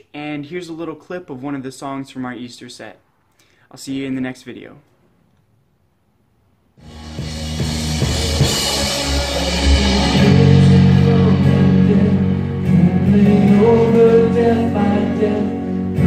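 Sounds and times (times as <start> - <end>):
drum kit and cymbals: 6.8 - 12.8
electric guitar: 6.8 - 16.0
worship band playing: 6.8 - 16.0.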